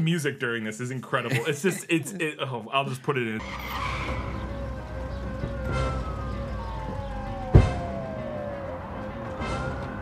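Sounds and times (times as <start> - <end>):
falling siren-like tone: 3.4 - 10.0
film soundtrack music: 3.4 - 10.0
sharp thump: 7.5 - 7.9.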